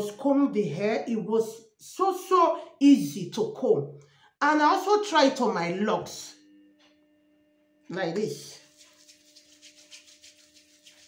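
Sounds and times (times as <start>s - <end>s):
palms rubbing cream: 8.6s - 11.0s.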